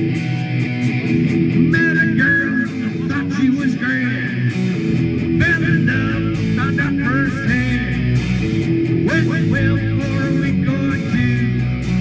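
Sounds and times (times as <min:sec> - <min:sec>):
rock band playing live: 0:00.0 - 0:12.0
person's voice: 0:01.7 - 0:04.7, 0:05.4 - 0:08.1, 0:09.0 - 0:11.6.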